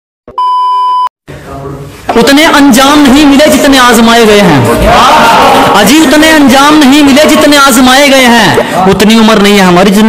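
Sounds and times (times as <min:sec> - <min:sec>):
test-tone beep: 0:00.4 - 0:01.1.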